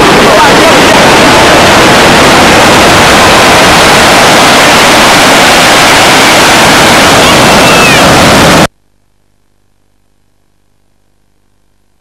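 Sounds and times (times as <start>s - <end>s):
loud static hiss: 0.0s - 12.0s.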